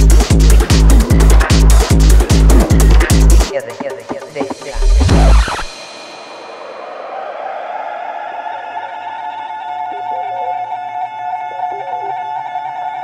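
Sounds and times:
low drone: 4.2 - 13.0.

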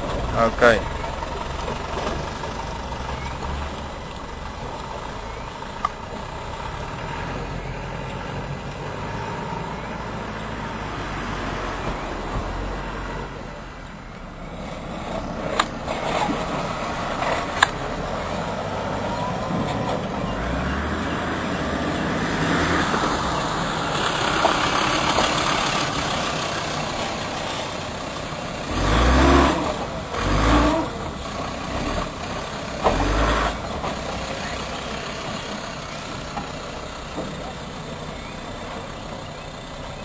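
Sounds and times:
off-road vehicle engine rumble: 0.0 - 40.0.

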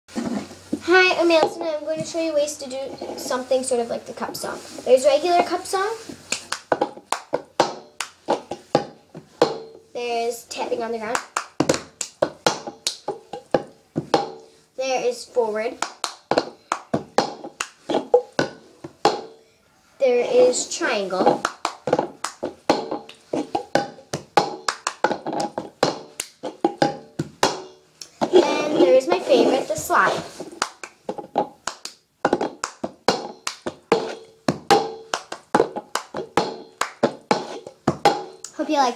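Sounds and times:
hand claps: 6.2 - 8.2, 11.1 - 13.0, 17.6 - 17.8, 21.4 - 22.5, 24.6 - 26.4, 30.6 - 31.0, 31.6 - 32.0, 32.6 - 33.8, 35.0 - 37.2
plastic cup tapped and knocked: 6.6 - 9.7, 11.2 - 14.4, 15.8 - 19.3, 30.6 - 38.4
plastic cup knocked on floor: 32.2 - 38.3.

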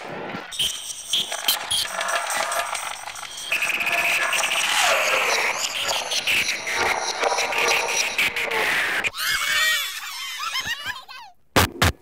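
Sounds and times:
layered tape-manipulated noises: 0.5 - 9.1
sharp tape clicks: 0.6 - 8.4.

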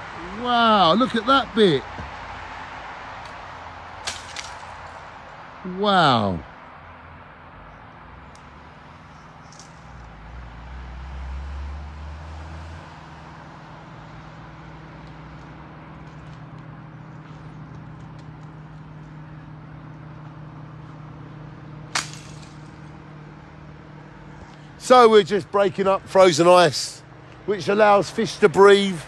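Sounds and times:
distant road traffic hum: 0.0 - 29.0.

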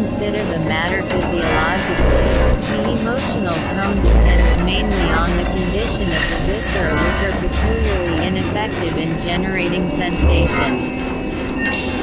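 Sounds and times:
gliding synthesizer tones: 0.0 - 12.0
deep bass tone: 2.0 - 2.6, 4.0 - 10.9.

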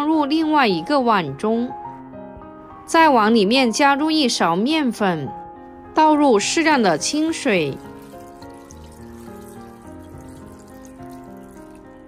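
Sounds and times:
background music: 0.0 - 12.0
water running into bowl: 6.6 - 12.0.

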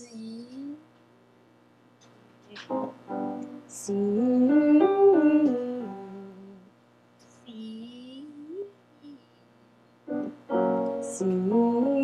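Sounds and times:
keyboard notes: 2.5 - 3.8, 10.1 - 12.0.

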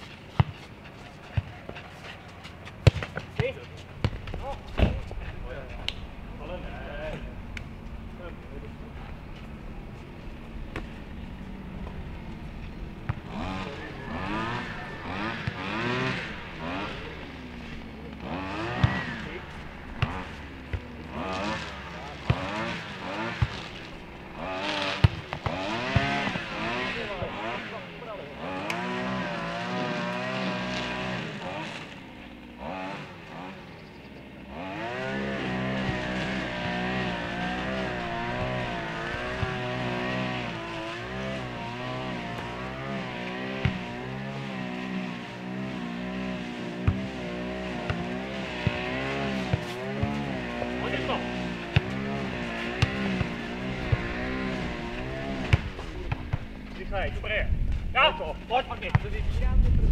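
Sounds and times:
motor engine running: 0.0 - 59.9
ball being kicked: 0.3 - 0.8, 2.5 - 6.1, 18.1 - 21.1, 24.8 - 26.5, 52.7 - 54.1, 55.4 - 56.5.

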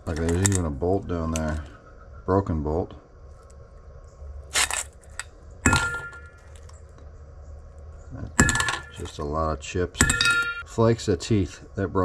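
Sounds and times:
sharp clinks with bowl ringing: 5.6 - 6.4, 8.4 - 9.2, 10.0 - 10.6.

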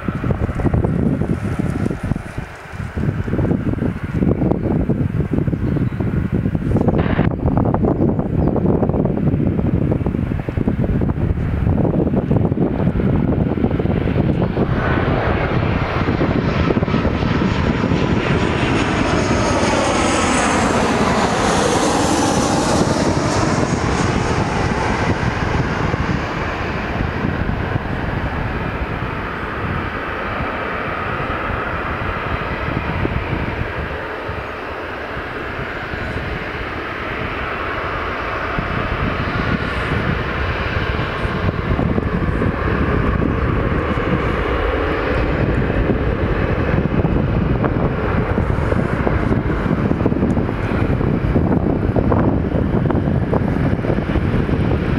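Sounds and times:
jet engines whining and rumbling: 0.0 - 54.9.

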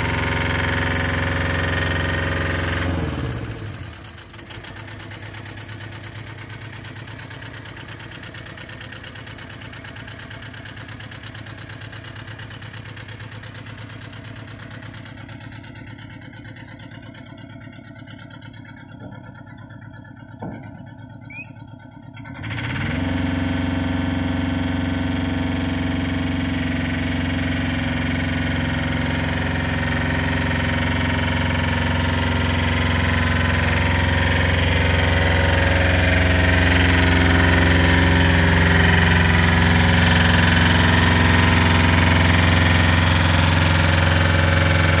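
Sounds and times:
diesel engine revving: 0.0 - 45.0.

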